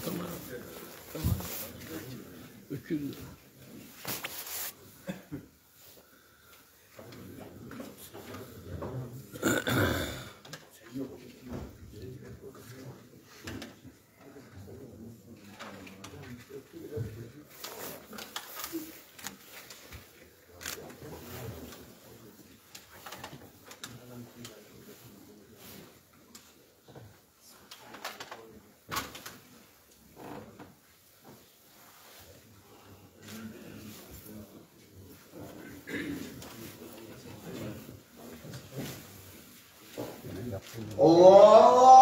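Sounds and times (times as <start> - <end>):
loud voice burst: 41.0 - 42.0.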